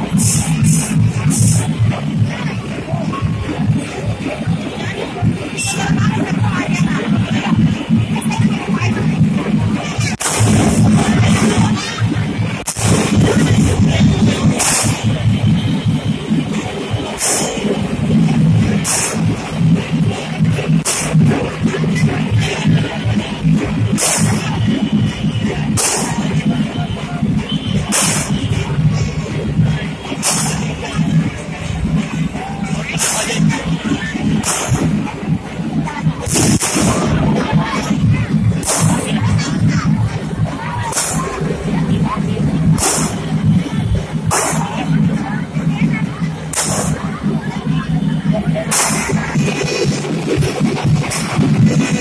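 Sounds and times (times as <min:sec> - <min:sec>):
firecrackers crackling: 0:00.0 - 0:52.0
procession music with heavy beat: 0:00.0 - 0:52.0.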